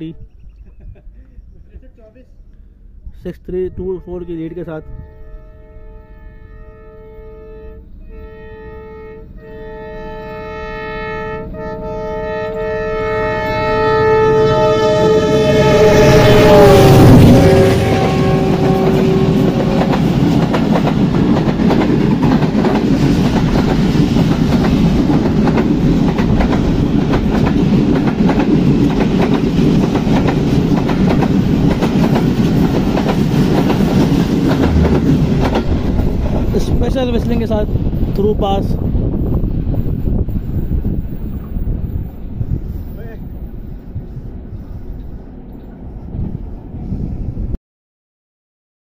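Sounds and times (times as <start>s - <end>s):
locomotive horn blast: 3.6s - 20.5s
train wheels rumbling on rail: 6.3s - 47.5s.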